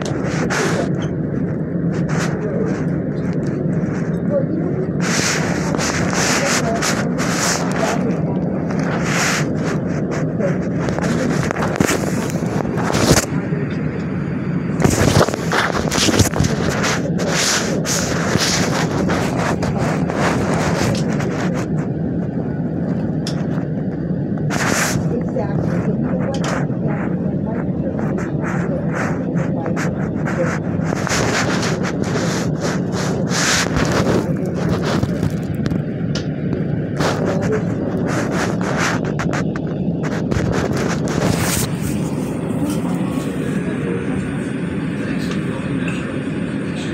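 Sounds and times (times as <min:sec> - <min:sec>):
rail car rumble: 0:00.0 - 0:46.9.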